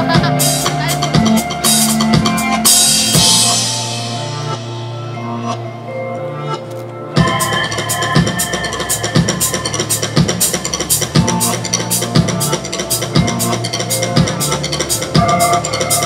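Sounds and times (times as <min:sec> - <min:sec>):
drum kit playing: 0:00.0 - 0:04.8, 0:07.2 - 0:16.0
backing track held notes: 0:00.0 - 0:16.0.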